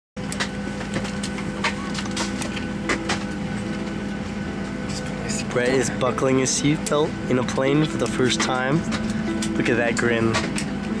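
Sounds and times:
airliner cabin hum: 0.2s - 11.0s.

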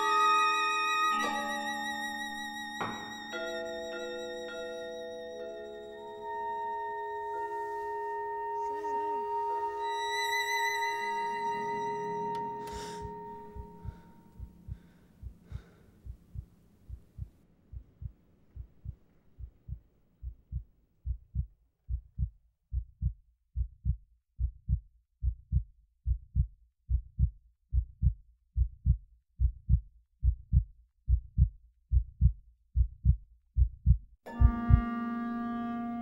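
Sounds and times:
heartbeat thumps: 13.6s - 34.9s.

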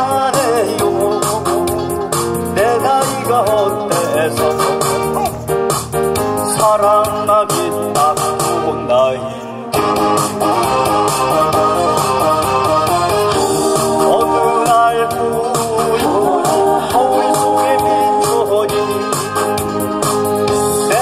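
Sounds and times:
man singing into a microphone: 0.0s - 5.3s, 6.2s - 10.0s, 13.4s - 19.6s, 20.5s - 21.0s
recorded accompaniment music: 0.0s - 21.0s.

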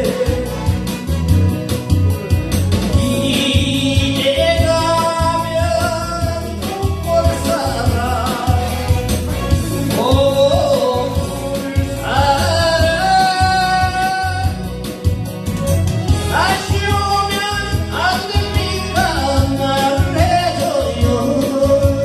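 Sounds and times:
man singing into microphone: 0.0s - 1.4s, 2.9s - 15.2s, 16.1s - 22.0s
backing track with steady beat: 0.0s - 22.0s.

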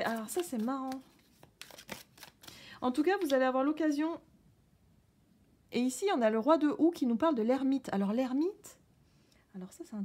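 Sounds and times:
woman speaking: 0.0s - 1.0s, 2.8s - 4.2s, 5.7s - 8.8s, 9.5s - 10.0s
tarot cards rustling and clicking: 0.0s - 3.4s.

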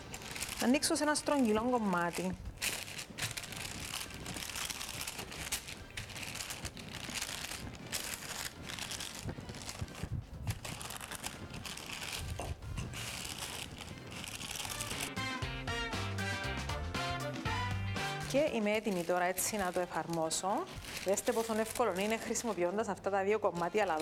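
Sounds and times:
parchment paper crinkling: 0.0s - 15.1s, 18.2s - 24.0s
music: 0.1s - 24.0s.

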